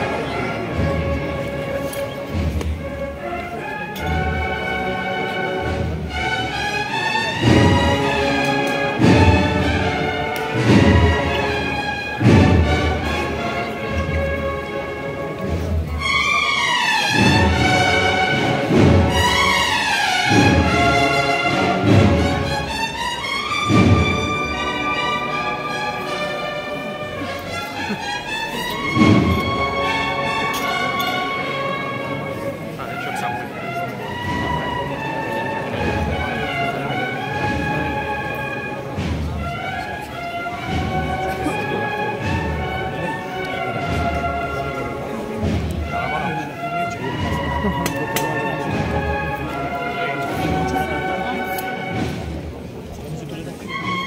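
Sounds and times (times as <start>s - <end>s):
brass band playing a march: 0.0s - 54.0s
heavy drum strikes: 8.9s - 13.4s, 38.9s - 39.8s.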